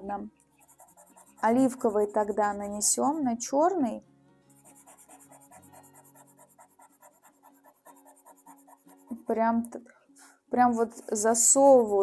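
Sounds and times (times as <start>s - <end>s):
soft background music: 0.0s - 12.0s
pastel pencil scratching on paper: 0.5s - 2.9s, 4.5s - 9.3s, 10.8s - 12.0s.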